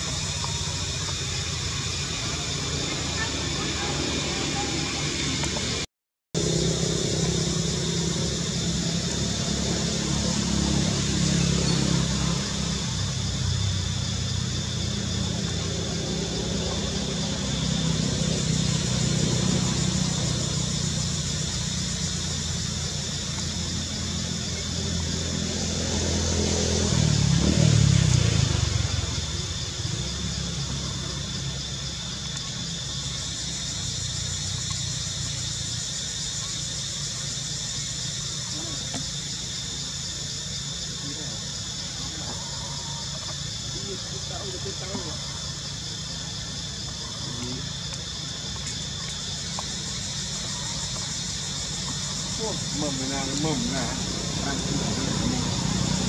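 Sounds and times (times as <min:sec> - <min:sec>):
low engine rumble: 0:00.0 - 0:56.0.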